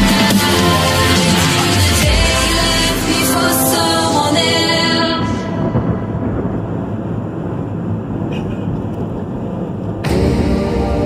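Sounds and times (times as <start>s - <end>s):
car road and engine rumble: 5.1s - 10.1s.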